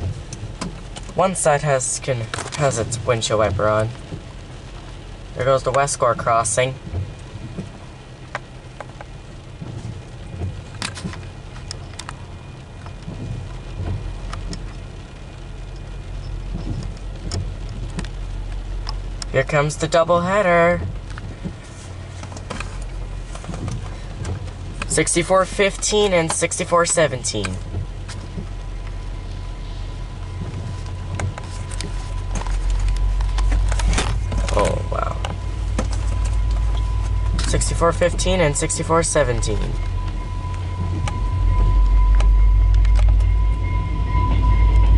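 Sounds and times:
raindrop clicks: 0:00.0 - 0:43.3
low diesel locomotive rumble: 0:00.0 - 0:44.9
rain falling on a car: 0:00.0 - 0:44.9.

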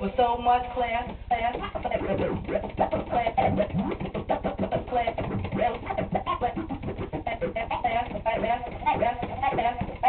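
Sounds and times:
turntable scratching: 0:00.0 - 0:10.0.

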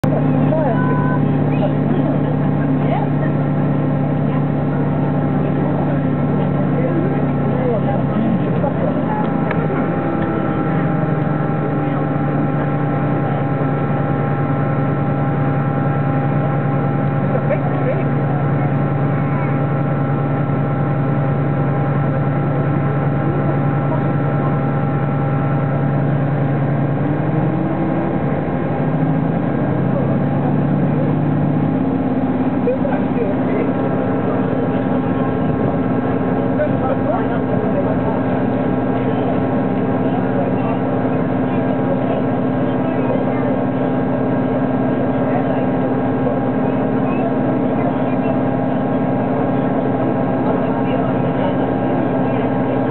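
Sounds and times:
faint voices murmuring: 0:00.0 - 0:52.9
train engine drone: 0:00.0 - 0:52.9.

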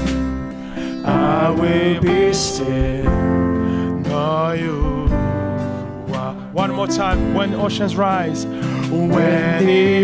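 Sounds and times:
acoustic guitar: 0:00.0 - 0:10.0
man singing worship song: 0:00.8 - 0:10.0.

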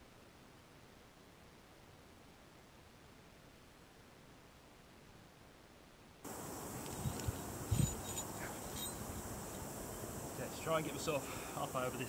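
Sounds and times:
high-pitched insect drone: 0:06.3 - 0:12.0.

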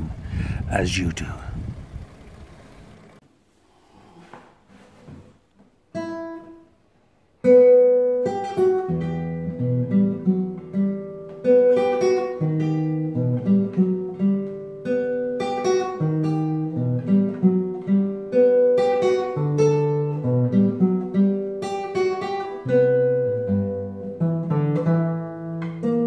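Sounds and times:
fingerstyle classical guitar: 0:05.9 - 0:06.7, 0:07.4 - 0:26.0.

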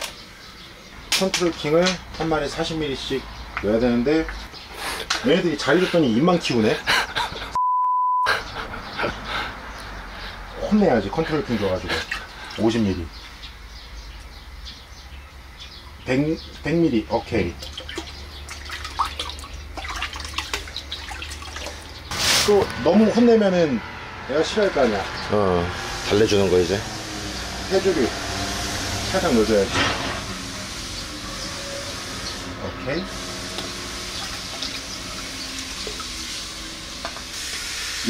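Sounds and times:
water splashing in plastic bucket: 0:17.3 - 0:22.1, 0:33.6 - 0:36.2.

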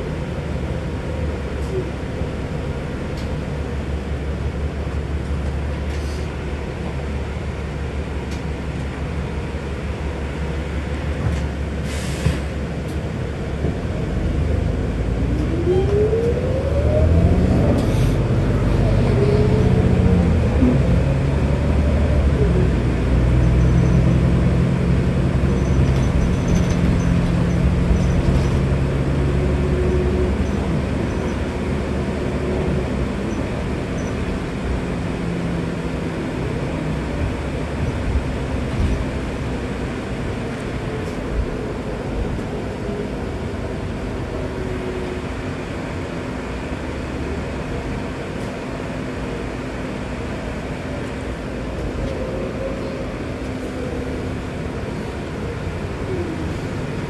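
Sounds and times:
bus engine and road rumble: 0:00.0 - 0:57.0
brief hisses: 0:11.8 - 0:12.5.

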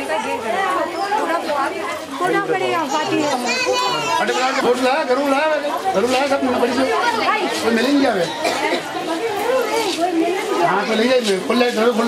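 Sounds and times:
women and children chattering: 0:00.0 - 0:12.0.

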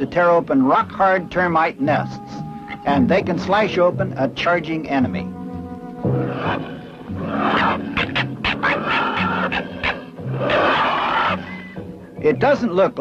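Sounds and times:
soundtrack music with low notes: 0:00.0 - 0:13.0
harsh animal growls: 0:06.0 - 0:11.6.

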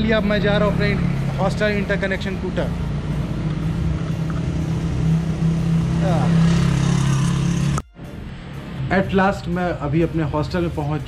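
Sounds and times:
motorbike engine running: 0:00.0 - 0:07.9
road and wind noise: 0:00.0 - 0:11.0.

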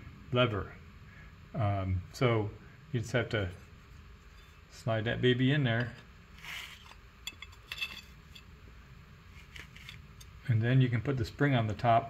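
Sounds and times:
metal bar scraping: 0:06.4 - 0:08.5
light metal clicks and clinks: 0:07.2 - 0:08.5.

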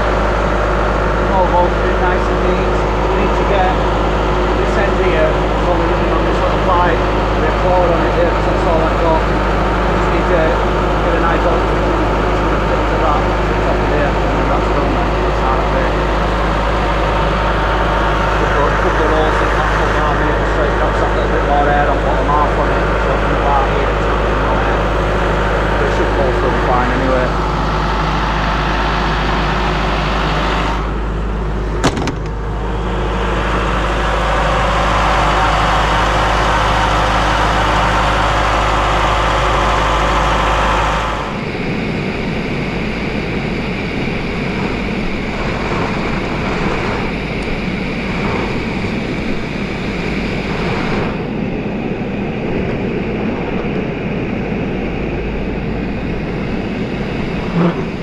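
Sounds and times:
air compressor humming: 0:00.0 - 0:58.0
rough machine noise: 0:00.0 - 0:58.0.

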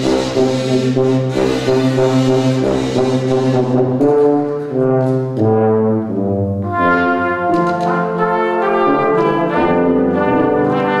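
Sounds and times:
kazoos buzzing chords: 0:00.0 - 0:11.0
tuba low bass note: 0:00.0 - 0:11.0.

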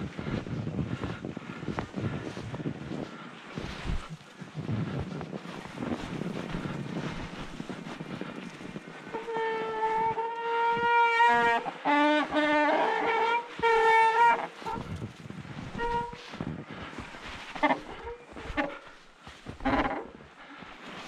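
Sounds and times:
wind on microphone: 0:00.0 - 0:18.8
bike tyres rolling through snow: 0:00.0 - 0:21.0.

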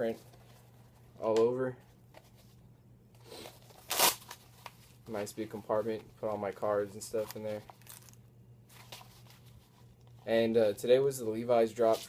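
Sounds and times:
velcro ripped open: 0:03.3 - 0:04.4.

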